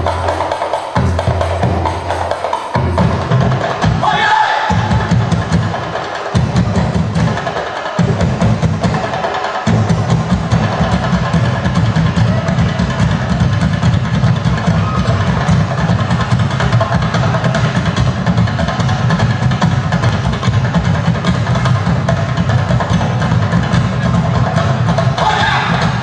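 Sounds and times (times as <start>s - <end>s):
fast drum rhythm: 0.0s - 26.0s.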